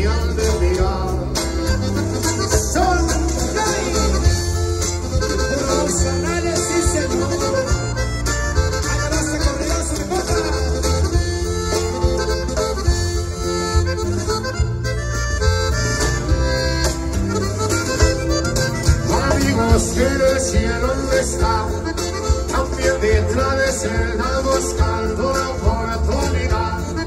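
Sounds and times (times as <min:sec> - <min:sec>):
accordion melody: 0:00.0 - 0:27.0
band playing over arena speakers: 0:00.0 - 0:27.0.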